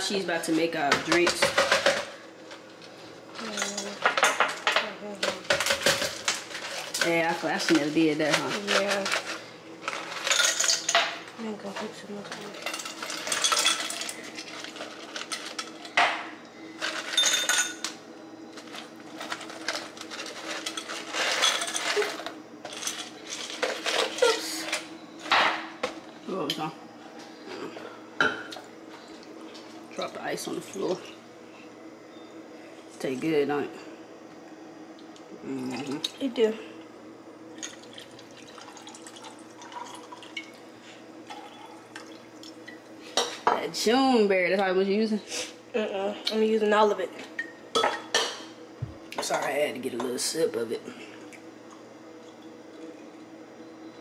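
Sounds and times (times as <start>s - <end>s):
drink pouring into glass: 37.6s - 40.6s, 41.2s - 42.6s.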